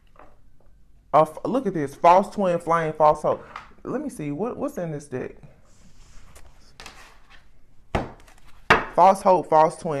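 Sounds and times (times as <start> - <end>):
cards rustling: 5.9 - 8.7.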